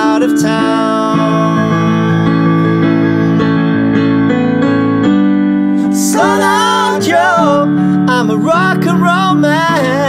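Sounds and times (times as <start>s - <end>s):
piano playing sustained chords: 0.0s - 10.0s.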